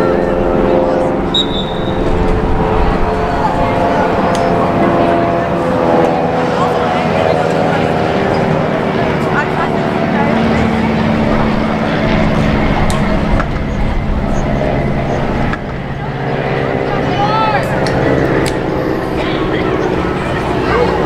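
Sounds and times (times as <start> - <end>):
steady low hum: 0.0 - 21.0
shouts and voices of players: 16.8 - 18.0.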